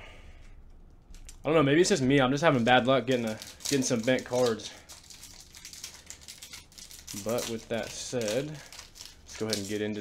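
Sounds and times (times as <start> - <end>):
foil wrapper crinkling and tearing: 2.4 - 10.0.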